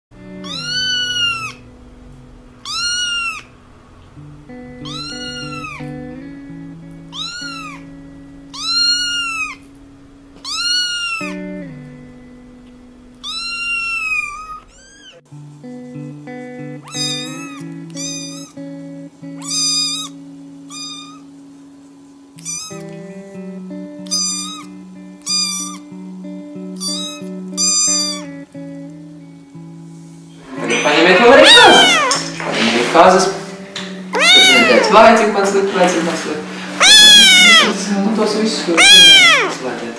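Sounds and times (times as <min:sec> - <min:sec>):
background music with held notes: 0:00.2 - 0:39.9
kittens meowing: 0:00.4 - 0:01.7, 0:02.6 - 0:11.9, 0:12.6 - 0:15.2, 0:16.6 - 0:21.3, 0:22.4 - 0:23.1, 0:24.0 - 0:26.0, 0:26.6 - 0:28.5, 0:30.7 - 0:32.4, 0:33.8 - 0:36.0, 0:36.7 - 0:37.9, 0:38.6 - 0:39.7.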